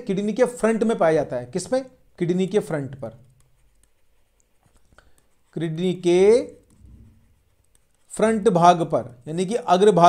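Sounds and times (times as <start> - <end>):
stylus scratching on tablet: 0.0 - 10.0
stylus tapping: 0.8 - 9.2.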